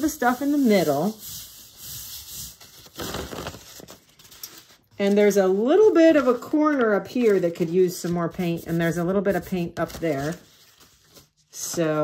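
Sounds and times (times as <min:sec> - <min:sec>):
paper rustling: 0:01.7 - 0:12.0
paper crinkling: 0:02.4 - 0:08.8, 0:09.4 - 0:11.8.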